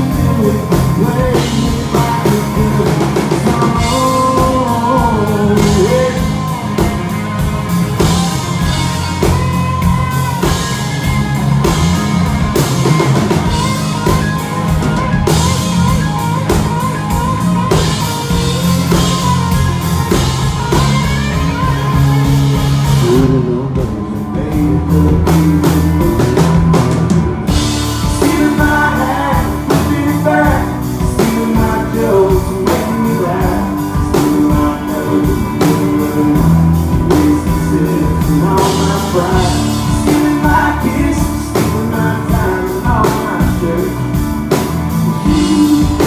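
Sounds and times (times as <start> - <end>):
rock band playing: 0.0 - 46.0.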